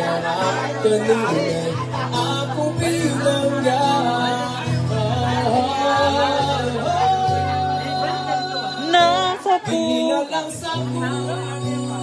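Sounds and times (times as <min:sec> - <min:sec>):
guitar accompaniment: 0:00.0 - 0:12.0
man singing: 0:00.0 - 0:12.0.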